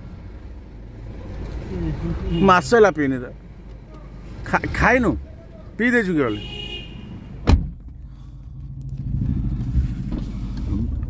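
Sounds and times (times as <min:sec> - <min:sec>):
motor vehicle rumble: 0:00.0 - 0:11.0.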